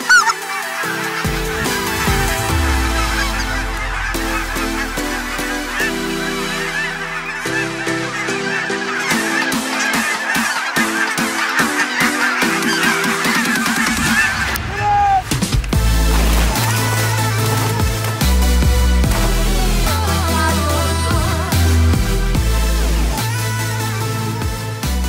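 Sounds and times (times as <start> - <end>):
drum beat: 0.0 - 5.1
electronic music with synth chords: 0.0 - 25.0
flock of geese honking: 0.0 - 25.0
deep bass drop: 1.3 - 7.4.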